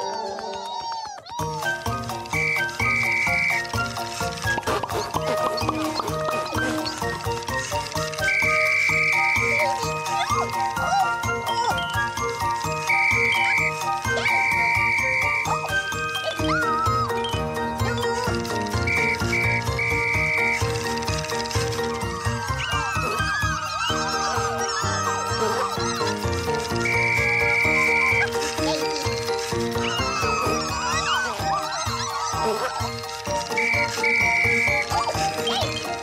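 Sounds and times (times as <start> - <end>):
tinkly children's music: 0.0 - 36.0.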